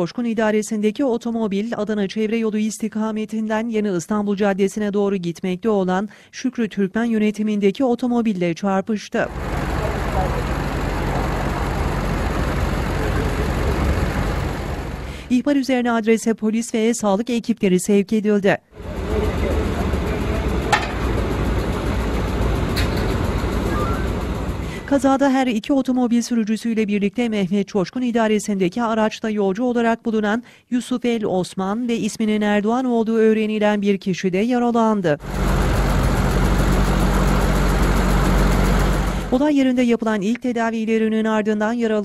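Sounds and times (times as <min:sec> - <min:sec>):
traffic rumble: 0:09.3 - 0:15.3, 0:18.8 - 0:25.0
vehicle engine idling: 0:09.3 - 0:15.3, 0:18.8 - 0:24.9, 0:35.2 - 0:39.4
faint men's voices: 0:09.5 - 0:14.5, 0:18.8 - 0:22.2.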